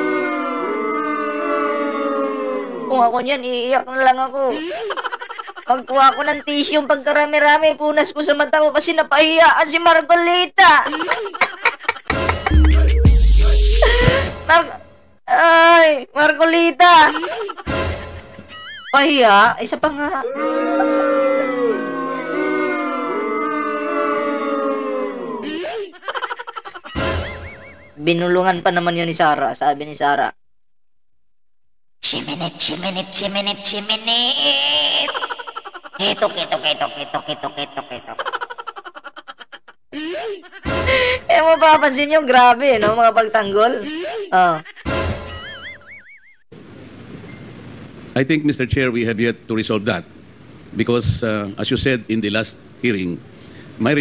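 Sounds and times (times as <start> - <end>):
mock-crying wail: 0.0 - 3.1, 20.0 - 25.8
high-pitched squealing laughter: 17.0 - 19.3, 25.4 - 28.0, 32.6 - 41.7, 43.9 - 46.4
warbling whistle sound effect: 27.2 - 28.0
soft background hiss: 46.5 - 54.0.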